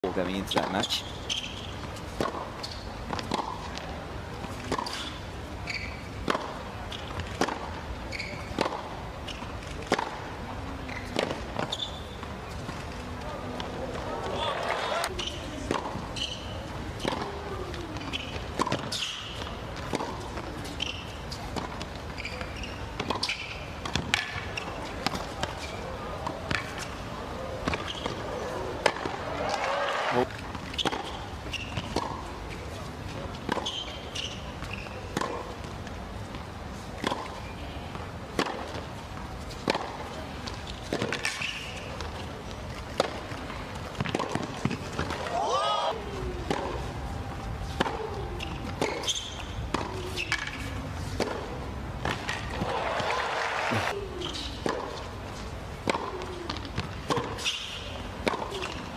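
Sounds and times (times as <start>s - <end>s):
balls bouncing on hard court: 0.3s - 3.9s, 13.6s - 26.9s, 27.6s - 32.3s, 39.5s - 45.4s, 47.7s - 54.0s
tennis rackets hitting balls: 0.4s - 5.4s, 6.1s - 10.3s, 10.9s - 12.8s, 13.6s - 32.6s, 33.4s - 37.5s, 38.3s - 38.9s, 39.5s - 58.9s
murmur of voices: 12.5s - 18.6s, 24.4s - 30.4s, 44.6s - 57.4s.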